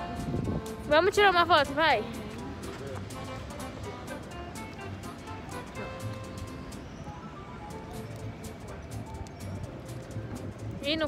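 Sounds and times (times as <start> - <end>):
music with regular beat: 0.0 - 6.9, 7.7 - 10.8.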